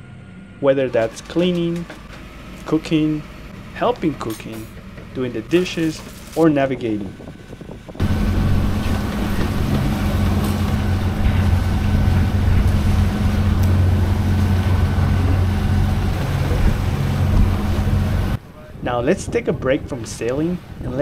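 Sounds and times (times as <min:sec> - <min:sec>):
boat engine humming: 0:00.0 - 0:18.8
water noise: 0:00.0 - 0:21.0
wind: 0:00.0 - 0:21.0.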